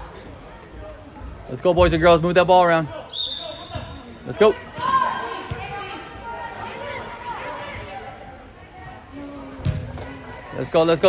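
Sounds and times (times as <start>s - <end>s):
ball kick thump: 9.6s - 10.1s.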